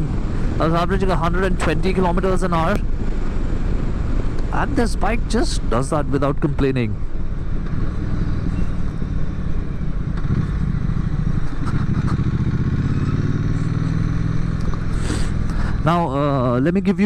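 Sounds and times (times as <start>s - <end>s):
wind and road noise: 0.0s - 17.0s
motorcycle engine running: 7.0s - 17.0s.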